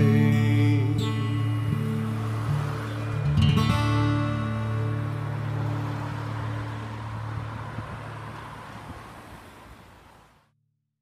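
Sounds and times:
acoustic guitar chord ringing: 0.0 - 7.5.

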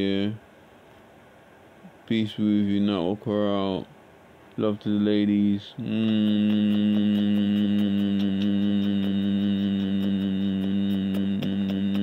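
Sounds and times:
man humming a steady note: 0.0 - 0.4, 4.6 - 12.0.

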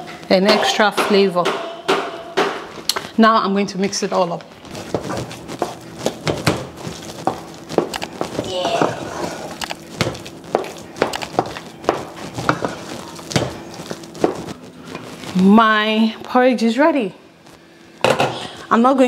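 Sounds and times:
wooden spoon scraping metal pot: 8.8 - 9.6, 12.1 - 15.6.

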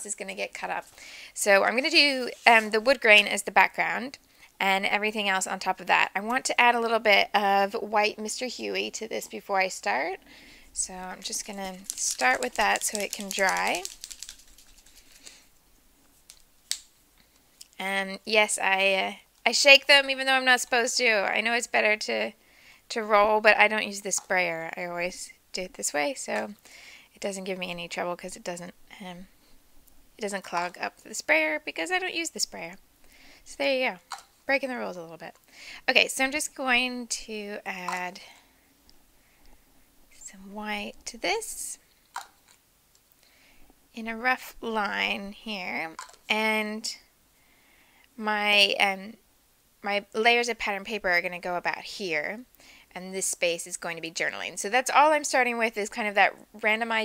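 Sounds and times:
wet ticks and rubbing: 10.8 - 16.9
hands rustling paper: 11.0 - 15.5.

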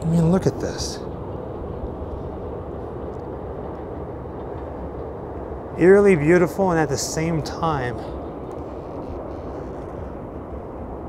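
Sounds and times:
distant city traffic rumble: 0.0 - 11.0.

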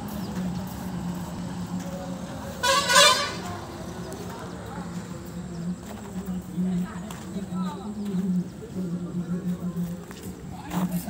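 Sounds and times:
vehicle horn honking: 2.6 - 3.6.

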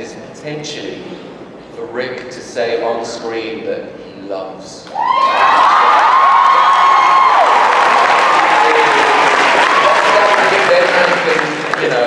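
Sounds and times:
high-pitched screams and whoops: 4.9 - 10.6
audience applause and cheering: 4.9 - 12.0.

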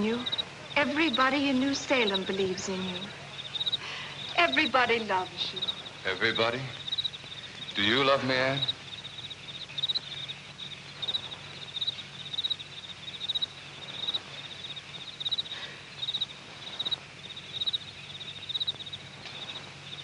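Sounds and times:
cricket chirping: 0.0 - 20.0
steady low hum: 0.0 - 20.0.

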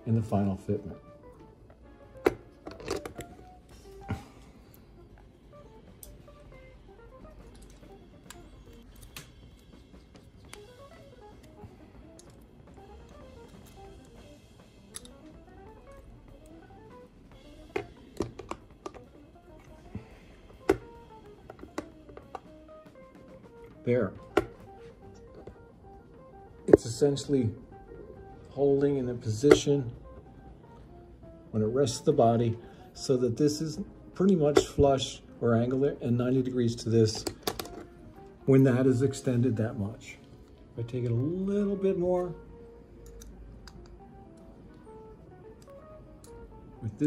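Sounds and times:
faint background music: 0.0 - 47.0.

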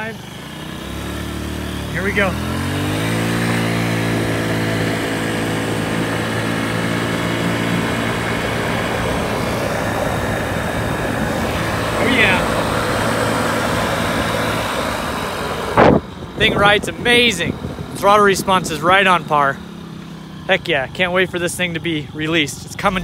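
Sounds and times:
scooter engine running: 0.0 - 23.0
wind and road noise: 0.0 - 23.0.

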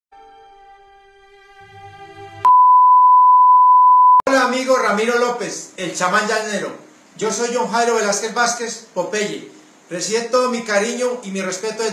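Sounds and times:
soft string music: 0.2 - 2.5
test-pattern tone beep: 2.5 - 4.2.

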